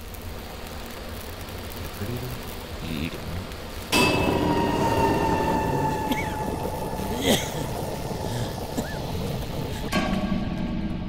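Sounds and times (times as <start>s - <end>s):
machinery hiss: 0.0s - 10.0s
low machinery hum: 1.7s - 10.0s.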